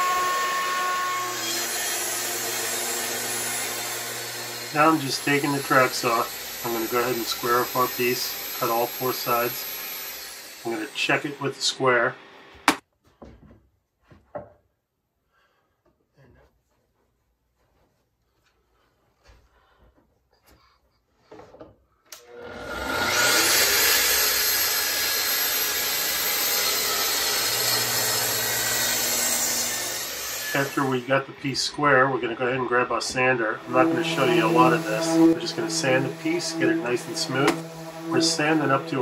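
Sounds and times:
track saw cutting wood: 0:00.0 - 0:12.8, 0:22.2 - 0:39.0.

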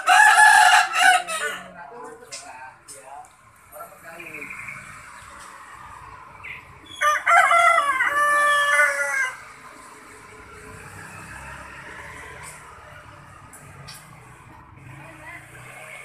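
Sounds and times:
rooster crowing: 0:00.0 - 0:01.8, 0:06.9 - 0:09.5.

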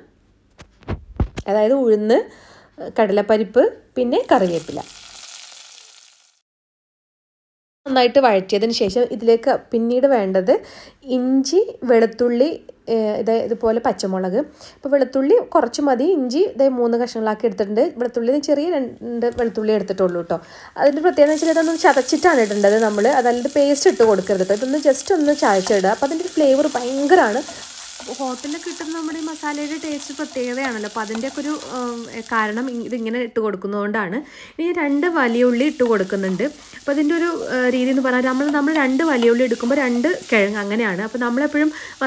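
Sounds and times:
woman talking: 0:01.4 - 0:04.9, 0:07.9 - 0:42.0
oil sizzling in a pan: 0:04.2 - 0:06.4, 0:20.8 - 0:33.2, 0:34.7 - 0:42.0
person speaking: 0:34.6 - 0:42.0.

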